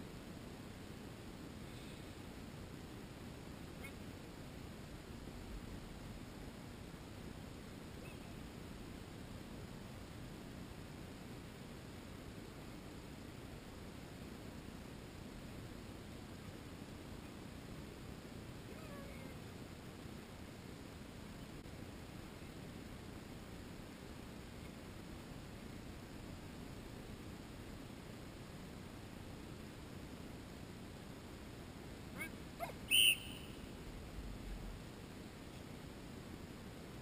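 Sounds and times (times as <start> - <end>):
faint high-pitched call: 8.0 - 8.4, 18.7 - 19.4, 32.2 - 33.8
high dog whistle blast: 32.6 - 33.7
faint falling chirps: 32.6 - 33.8.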